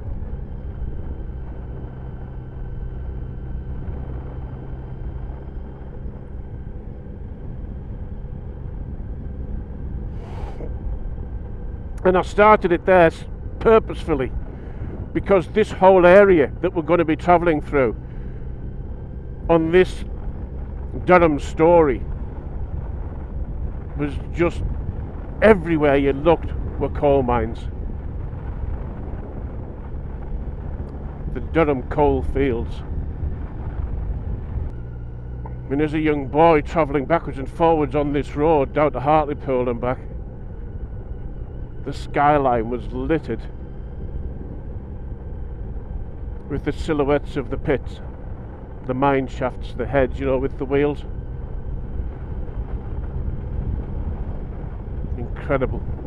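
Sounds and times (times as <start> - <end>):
motorcycle engine running: 0.0 - 56.0
wind and road noise: 0.0 - 56.0.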